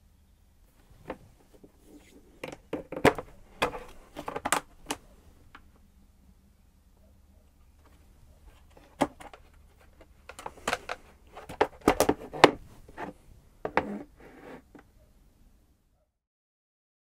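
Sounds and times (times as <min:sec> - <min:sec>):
plastic scraping: 0:01.0 - 0:05.0, 0:07.8 - 0:14.8.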